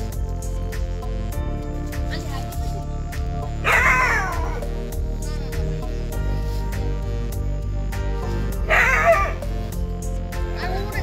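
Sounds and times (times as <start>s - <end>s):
background music: 0.0s - 11.0s
dog whining: 3.6s - 4.6s, 8.7s - 9.4s.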